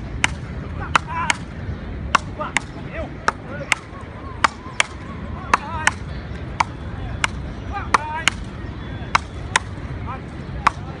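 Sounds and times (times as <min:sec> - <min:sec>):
paddles striking ball: 0:10.6 - 0:11.0.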